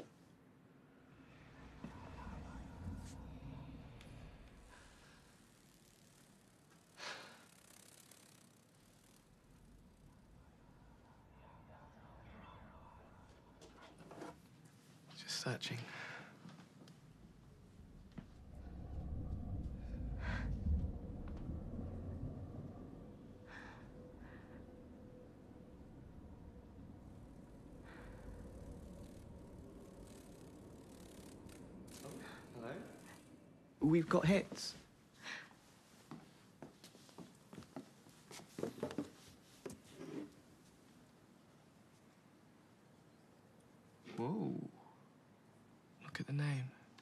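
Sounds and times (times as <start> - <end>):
faint low hum: 0.0 - 47.0
low rumble: 0.8 - 6.5, 9.2 - 13.9, 16.9 - 34.0.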